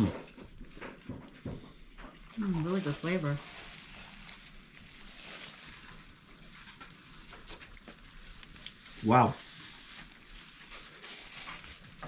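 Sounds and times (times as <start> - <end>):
chewing food: 0.1 - 12.0
paper napkin dabbing: 2.4 - 12.0.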